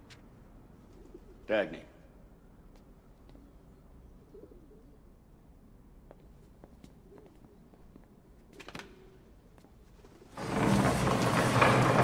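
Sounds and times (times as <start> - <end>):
pigeons cooing: 4.1 - 5.1.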